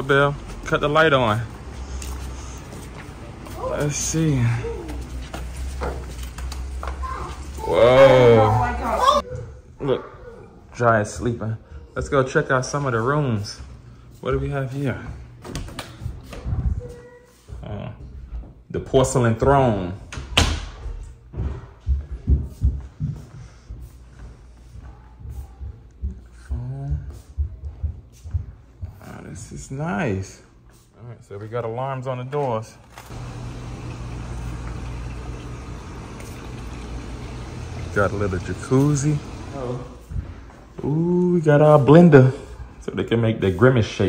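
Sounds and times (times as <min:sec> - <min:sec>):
low machine hum: 0:33.1 - 0:40.6.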